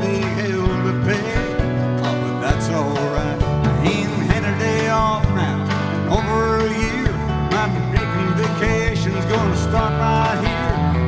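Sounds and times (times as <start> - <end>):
electric guitar: 0.0 - 11.0
man singing: 0.0 - 11.0
steady drum beat: 0.0 - 11.0
strummed acoustic guitar: 0.0 - 11.0.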